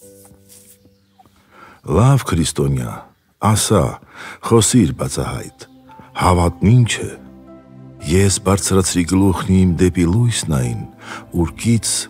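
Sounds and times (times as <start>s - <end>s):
soft held chord music: 0.0s - 12.0s
narrating voice: 1.8s - 7.3s, 8.0s - 12.0s.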